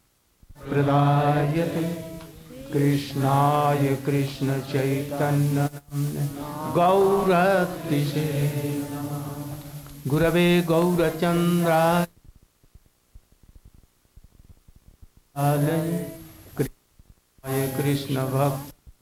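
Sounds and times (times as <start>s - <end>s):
man chanting verses: 0.6s - 12.1s, 15.4s - 16.7s, 17.4s - 18.7s.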